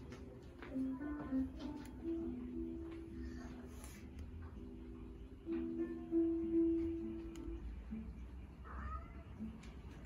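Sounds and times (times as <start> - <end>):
cat meowing: 8.6 - 9.4.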